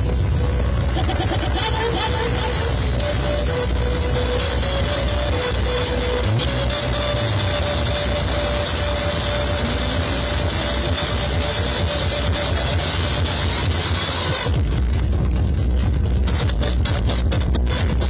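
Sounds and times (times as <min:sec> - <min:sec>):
loud heavy-bass music: 0:00.0 - 0:18.0.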